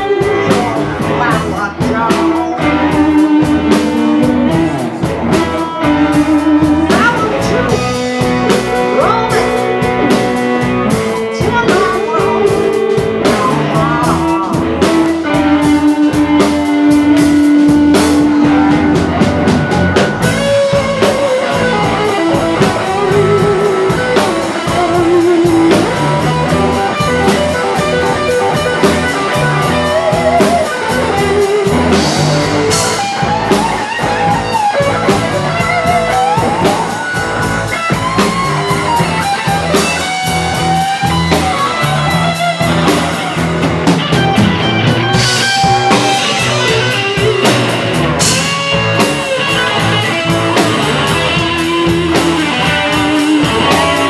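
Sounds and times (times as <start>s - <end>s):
rock band playing: 0.0s - 54.0s.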